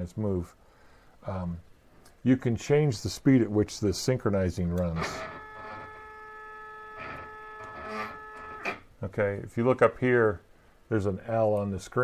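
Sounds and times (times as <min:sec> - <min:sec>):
stepper motors whining: 0:04.8 - 0:08.8.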